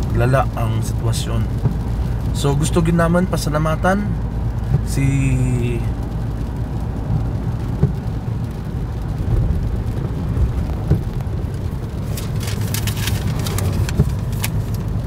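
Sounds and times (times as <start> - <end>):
car engine and tyres rumbling: 0.0 - 15.0
rain and spray hissing: 0.0 - 15.0.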